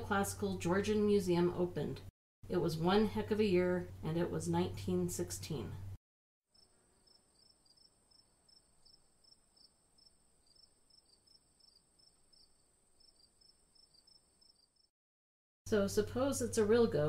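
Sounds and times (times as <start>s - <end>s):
crickets chirping: 6.6s - 14.9s.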